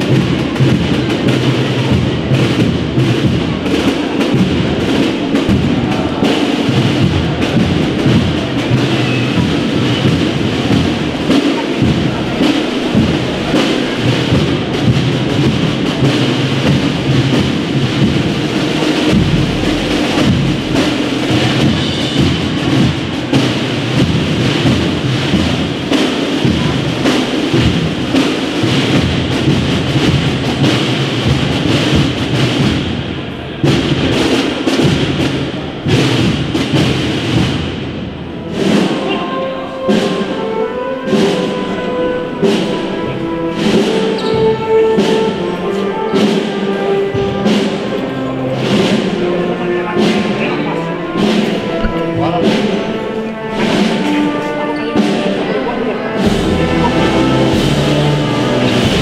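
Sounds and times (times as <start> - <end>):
steady drum beats: 0.0 - 59.0
wind band playing a march: 0.0 - 59.0.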